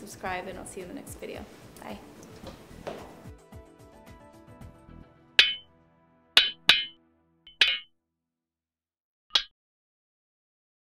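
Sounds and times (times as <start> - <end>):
background music: 0.0 - 7.8.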